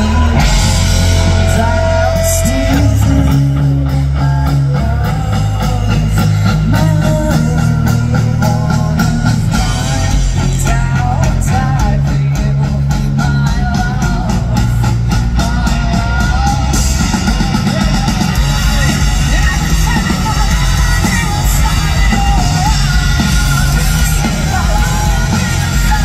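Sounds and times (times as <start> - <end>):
live rock band playing: 0.0 - 26.0
woman singing: 0.0 - 26.0.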